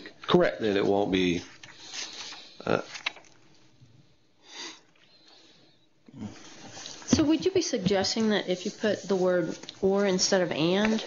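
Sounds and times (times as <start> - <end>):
breathy sniff: 4.4 - 7.0.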